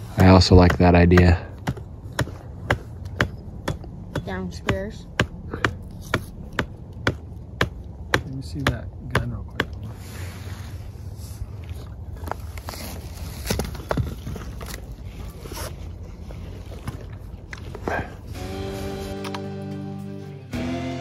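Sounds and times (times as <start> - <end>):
background music: 18.3 - 21.0.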